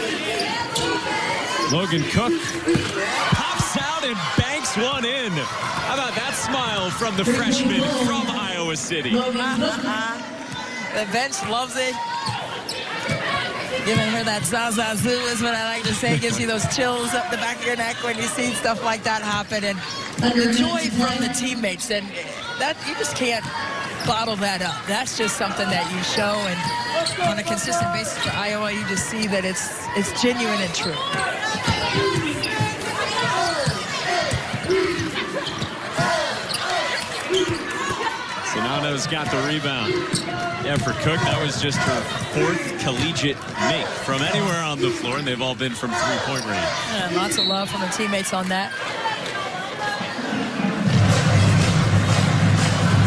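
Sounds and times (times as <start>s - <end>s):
murmur of arena crowd: 0.0s - 53.0s
voices in a hall: 0.0s - 53.0s.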